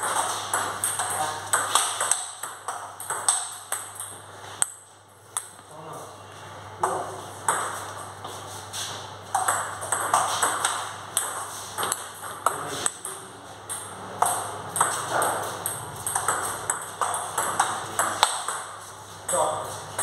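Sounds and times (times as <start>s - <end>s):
table tennis balls clicking: 0.0s - 4.8s, 9.3s - 20.0s.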